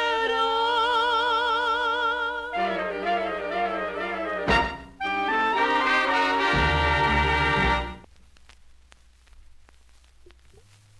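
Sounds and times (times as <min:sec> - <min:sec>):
orchestral recording on a record: 0:00.0 - 0:10.9.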